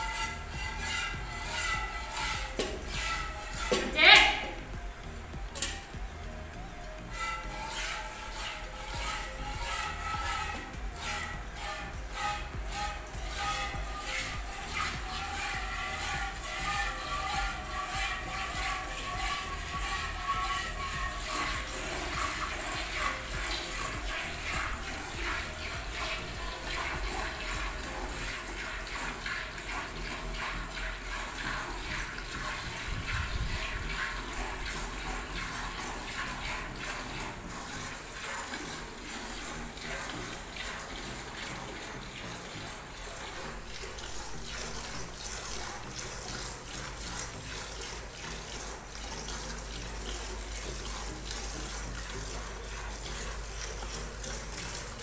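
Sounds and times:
tune playing: 0:00.0 - 0:28.3
milk squirting into steel bucket: 0:00.0 - 0:55.0.

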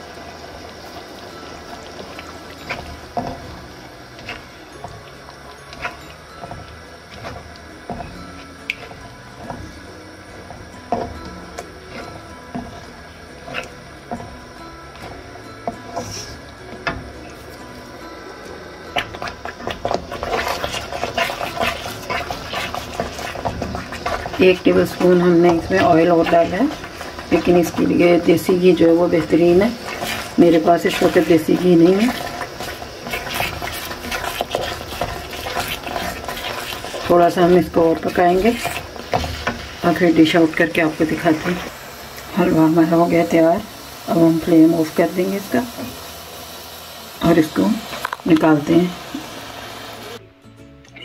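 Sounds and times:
stirring and scraping: 0:00.0 - 0:46.0
food simmering in a wok: 0:00.0 - 0:50.2
quiet background music: 0:00.0 - 0:51.0.

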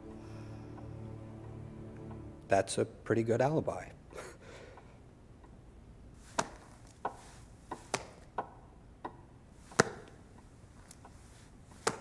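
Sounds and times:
sharp taps on a hard surface: 0:06.4 - 0:10.2, 0:11.8 - 0:12.0.

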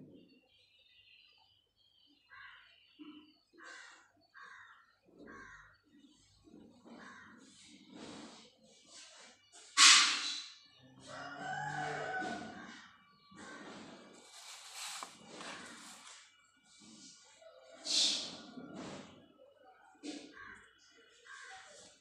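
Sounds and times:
bird calls: 0:00.0 - 0:22.0.

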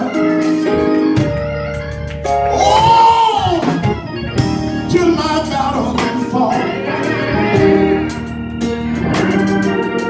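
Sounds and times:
organ accompaniment: 0:00.0 - 0:10.0
man singing into a microphone: 0:04.8 - 0:07.7.

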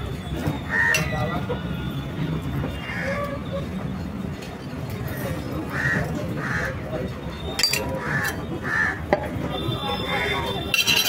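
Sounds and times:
market background din: 0:00.0 - 0:11.0.

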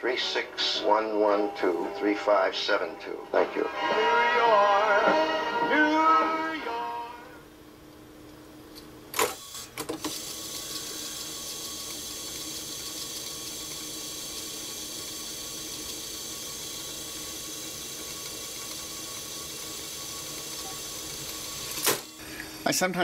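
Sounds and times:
tape fast-winding whir: 0:00.0 - 0:07.5, 0:09.4 - 0:22.2.

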